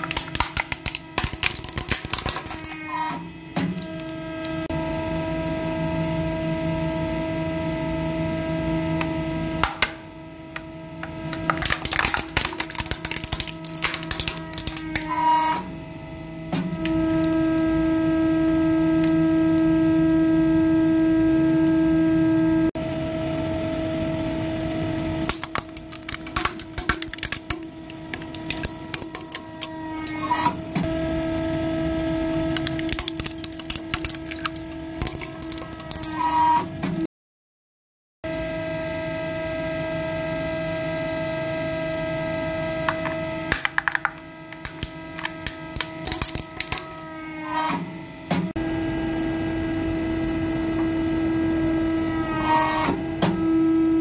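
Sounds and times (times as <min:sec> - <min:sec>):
plastic cracking and snapping: 0:00.0 - 0:02.8, 0:11.3 - 0:15.1, 0:25.2 - 0:29.7, 0:32.6 - 0:36.2, 0:43.5 - 0:47.0.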